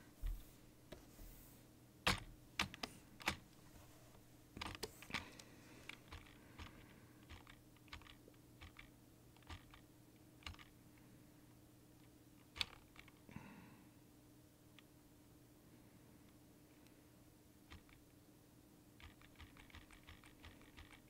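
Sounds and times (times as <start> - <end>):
faint steady low hum: 0.0 - 21.0
computer keyboard keystrokes: 2.1 - 3.4, 6.0 - 9.8, 10.4 - 10.7, 12.4 - 13.2, 17.7 - 18.0, 19.0 - 21.0.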